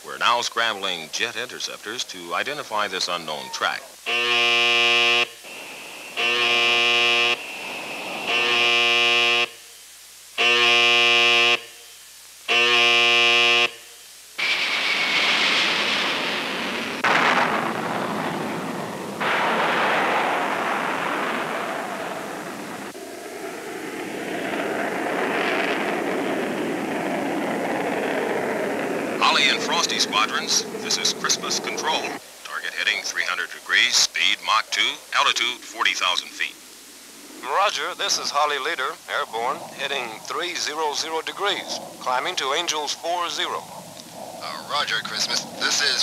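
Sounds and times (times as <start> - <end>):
jet fighters taking off: 0.0 - 9.6, 14.4 - 46.0
electric alarm horn blasts: 4.0 - 9.8, 10.4 - 14.1.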